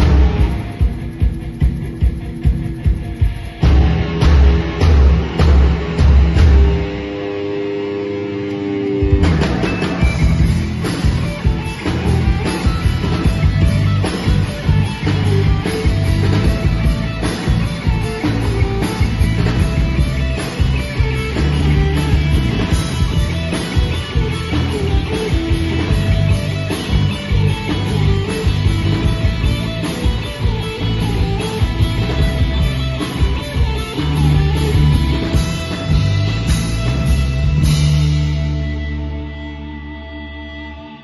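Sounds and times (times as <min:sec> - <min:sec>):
drums and full band crashing: 0:00.0 - 0:39.3
sustained guitar and keyboard chord: 0:00.0 - 0:41.0.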